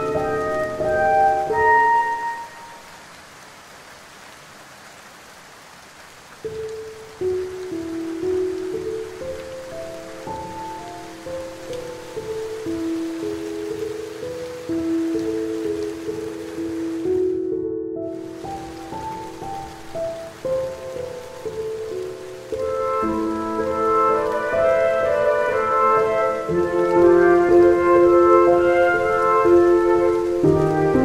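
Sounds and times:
slow melodic music: 0.0s - 3.0s, 6.4s - 31.0s
steady rain: 0.0s - 31.0s.

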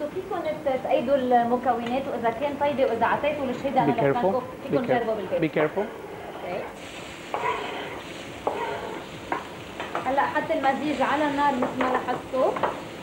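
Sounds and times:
vegetables sizzling in a frying pan: 6.4s - 13.0s
utensil scraping and knocking a pan: 7.3s - 10.2s.

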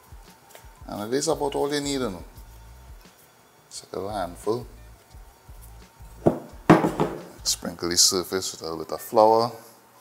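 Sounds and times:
dough thump on wooden board: 6.2s - 7.4s.

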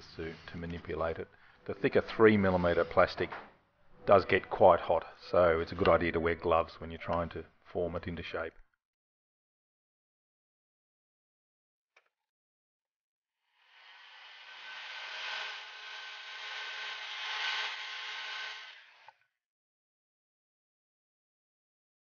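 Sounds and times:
heat gun blowing air: 13.7s - 19.1s.

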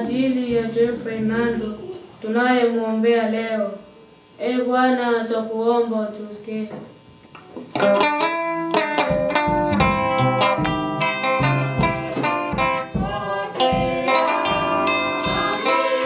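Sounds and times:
plucked string church music: 7.8s - 16.0s
chanted voice: 13.0s - 16.0s.

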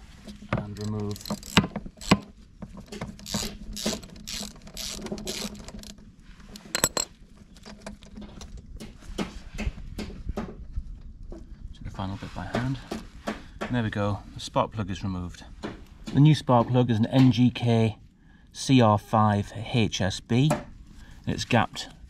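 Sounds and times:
wrench metallic clicks and rattles: 0.6s - 8.6s.

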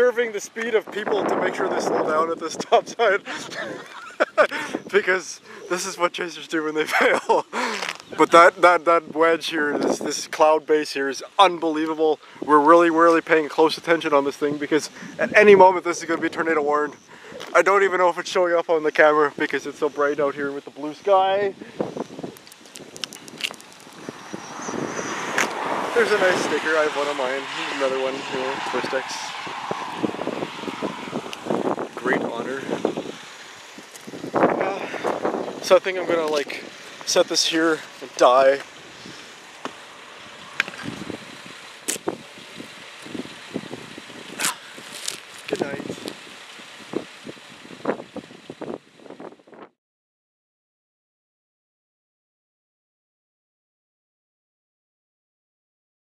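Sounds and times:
outdoor background hiss: 0.0s - 49.6s
vehicle road noise: 0.0s - 49.8s
wordless voice sounds: 4.5s - 6.9s, 7.7s - 21.7s, 25.9s - 29.4s, 34.6s - 39.3s.

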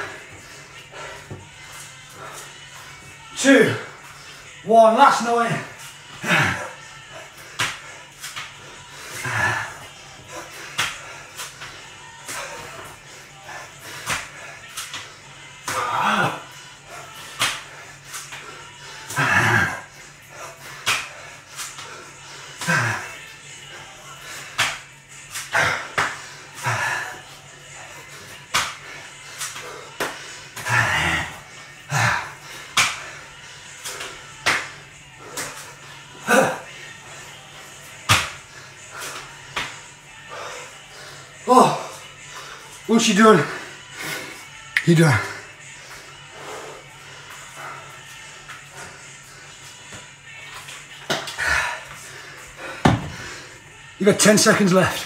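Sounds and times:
hands and feet slapping tiles: 7.5s - 8.6s, 10.6s - 12.7s, 14.0s - 16.0s, 17.2s - 19.4s, 20.6s - 23.1s, 24.4s - 26.9s, 28.4s - 30.9s, 32.6s - 33.2s, 33.8s - 35.7s, 38.0s - 39.8s, 49.9s - 52.0s, 52.7s - 53.3s
person grunting: 15.7s - 16.4s, 19.1s - 19.9s, 36.2s - 36.7s.

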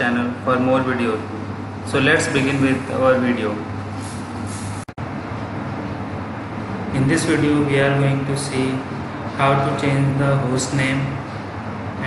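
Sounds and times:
background hiss with low hum: 0.0s - 12.0s.

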